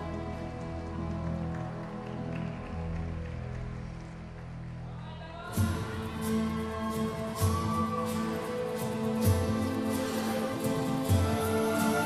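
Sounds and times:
slow instrumental music: 5.6 - 12.0.

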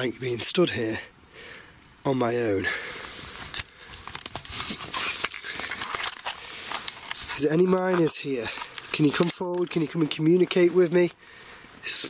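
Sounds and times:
clothing rustling: 3.0 - 10.9
camera handling noise: 3.3 - 10.7.

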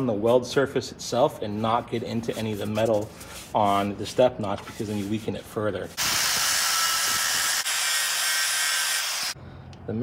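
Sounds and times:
angle grinder grinding metal: 6.0 - 9.4.

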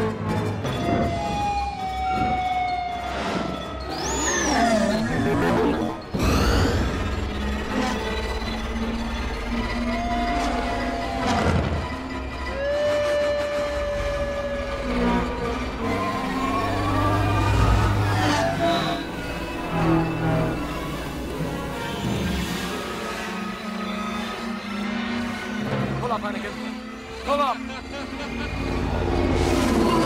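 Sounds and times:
orchestral film music: 0.0 - 30.0.

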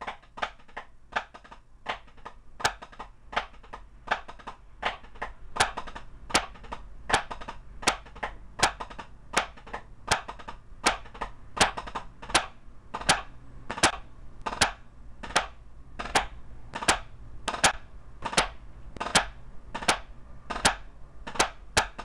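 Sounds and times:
drumsticks on practice pad: 0.0 - 22.0.

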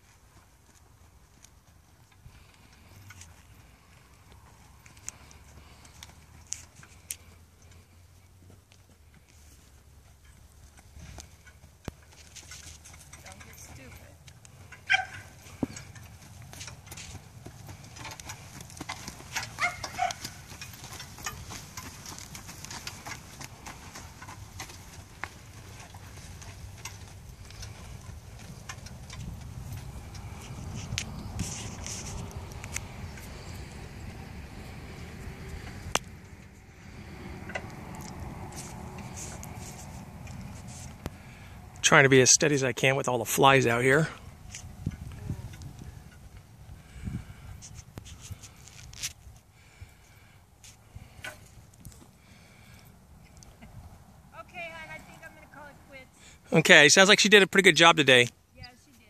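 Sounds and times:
hoof clicks on dirt: 0.0 - 59.0
cart rattling: 11.4 - 32.3.

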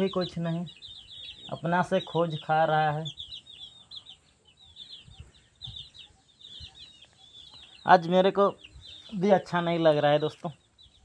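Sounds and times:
chicks cheeping: 0.0 - 11.0.

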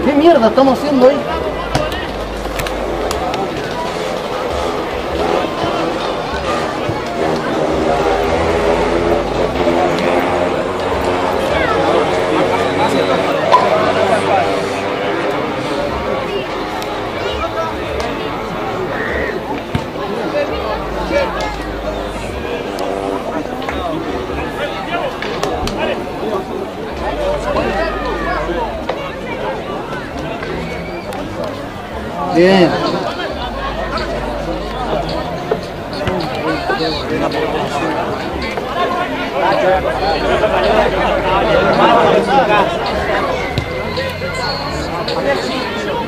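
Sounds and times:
people chattering: 0.0 - 46.0.

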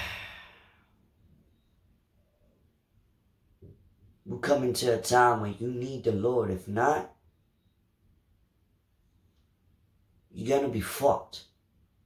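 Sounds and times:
man sighing heavily: 0.0 - 0.8.

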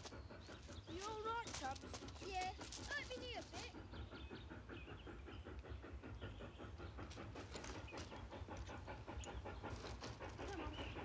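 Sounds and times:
steam locomotive chuffing: 0.0 - 11.0.

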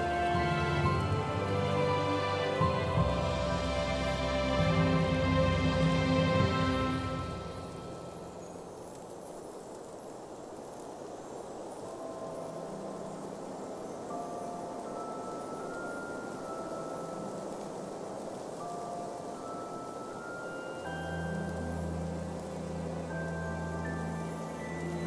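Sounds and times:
chime-like notes: 0.0 - 8.9, 11.9 - 25.0
wind-like hiss: 0.0 - 25.0.

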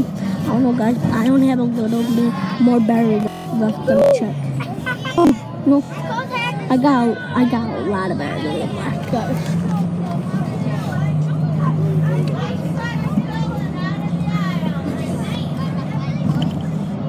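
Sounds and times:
bus engine droning: 0.0 - 17.0
children talking: 0.0 - 17.0.

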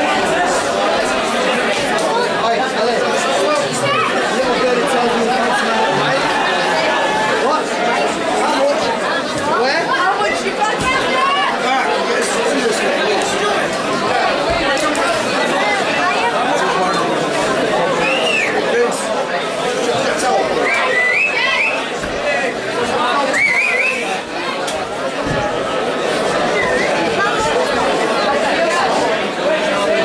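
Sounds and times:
crowd chatter: 0.0 - 30.0.

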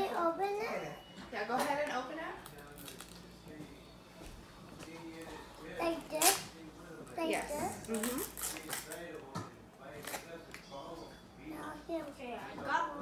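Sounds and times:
sharp paper crackle: 7.9 - 9.0.

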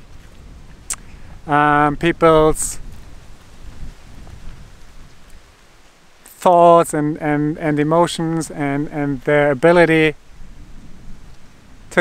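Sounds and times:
wind buffeting microphone: 0.0 - 6.2, 6.9 - 12.0.

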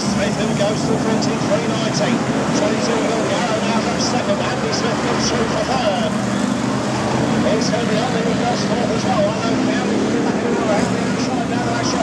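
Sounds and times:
race car engines passing: 0.0 - 12.0.

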